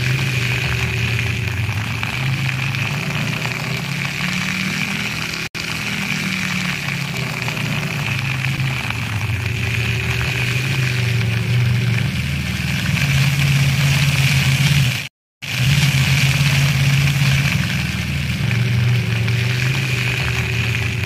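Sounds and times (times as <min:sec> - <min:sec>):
fountain water jets hissing: 0:00.0 - 0:21.0
vehicle engines humming: 0:00.0 - 0:21.0.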